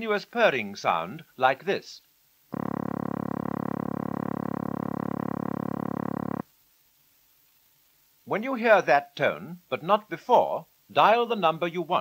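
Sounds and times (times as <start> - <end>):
telephone dialling tone: 2.6 - 6.4.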